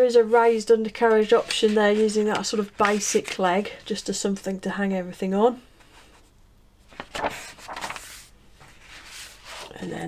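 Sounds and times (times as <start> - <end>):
paper page rustling and sliding: 0.8 - 3.4, 6.9 - 9.8.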